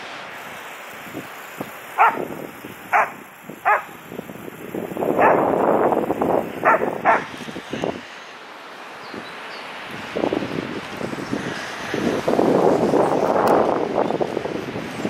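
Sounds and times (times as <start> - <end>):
wind buffeting microphone: 1.0 - 8.1, 9.9 - 15.0
animal barking calls: 1.9 - 4.1, 5.1 - 5.6, 6.6 - 7.4.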